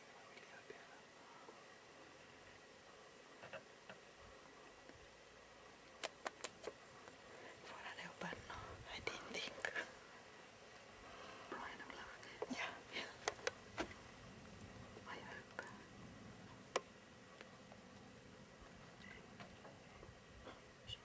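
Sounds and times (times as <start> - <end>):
sharp clicks: 6.0 - 6.8
people whispering: 7.6 - 10.0, 11.5 - 13.3, 15.0 - 15.9.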